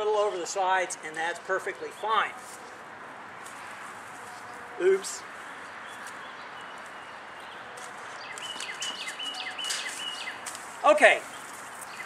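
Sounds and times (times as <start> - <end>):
steady outdoor hiss: 0.0 - 12.0
songbird calling: 5.4 - 10.5, 11.2 - 12.0.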